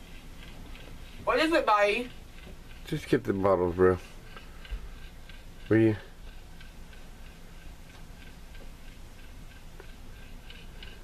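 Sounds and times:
faint ticking: 0:00.0 - 0:11.0.

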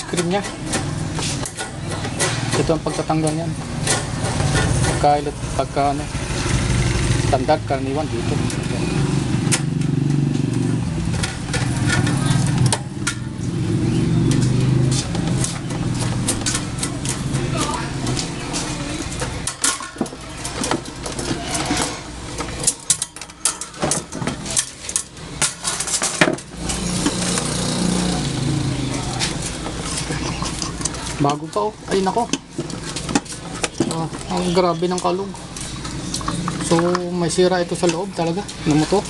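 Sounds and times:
metal clicks and rattles: 0:09.5 - 0:13.4, 0:14.3 - 0:27.5.

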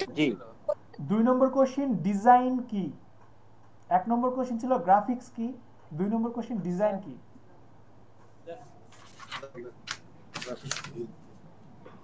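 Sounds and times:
faint voice: 0:00.0 - 0:00.9.

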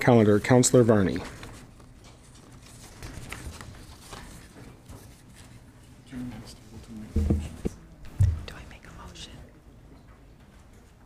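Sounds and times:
whispered speech: 0:08.4 - 0:09.6.

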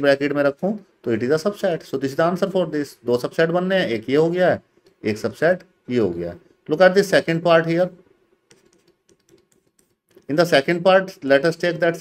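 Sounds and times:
man talking: 0:00.0 - 0:08.0, 0:10.2 - 0:12.0
stylus tapping on pen tablet: 0:08.4 - 0:10.3.

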